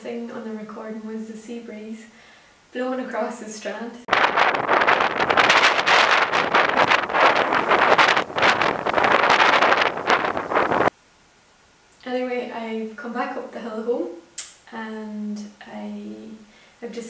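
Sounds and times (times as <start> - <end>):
gusty wind on microphone: 4.1 - 10.9.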